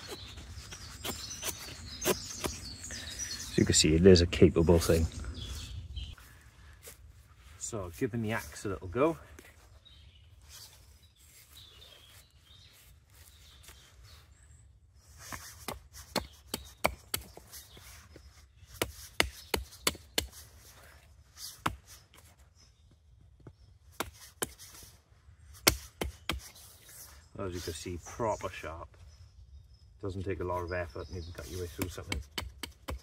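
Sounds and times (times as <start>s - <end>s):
hatchet chopping wooden stick: 15.6s - 17.5s, 18.7s - 20.4s, 24.0s - 24.7s, 25.6s - 26.5s, 31.5s - 33.0s.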